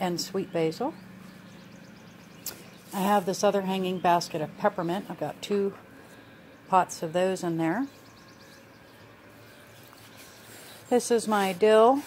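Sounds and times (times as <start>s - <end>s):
faint outdoor background: 0.0s - 12.0s
bird chirping: 0.9s - 3.1s, 7.8s - 10.8s.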